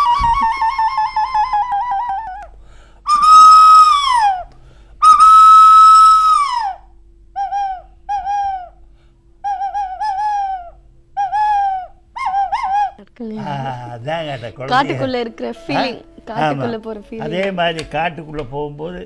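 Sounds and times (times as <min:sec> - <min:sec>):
whistled high sliding notes: 0:00.0 - 0:02.4, 0:03.1 - 0:08.7, 0:09.4 - 0:13.0.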